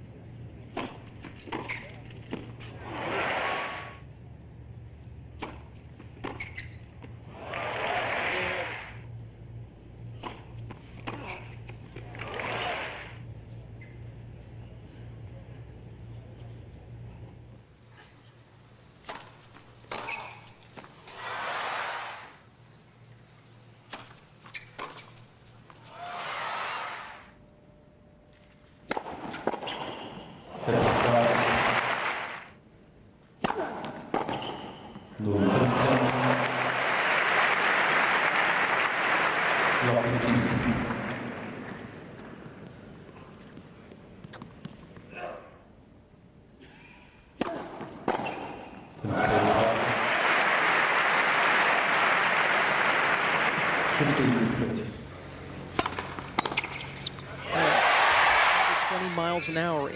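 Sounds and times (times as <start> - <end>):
crowd cheering and applause: 7.3 - 9.0, 12.1 - 13.2, 21.2 - 22.4, 25.9 - 27.3, 30.6 - 32.5, 35.5 - 41.8, 49.0 - 54.6, 57.4 - 59.2
tennis ball struck by rackets: 28.8 - 29.9, 55.6 - 57.7.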